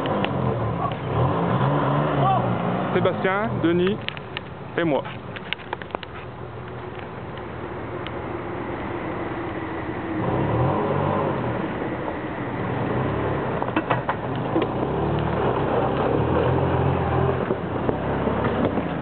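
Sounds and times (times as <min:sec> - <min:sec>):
engine revving: 0:00.0 - 0:04.5, 0:07.2 - 0:19.0.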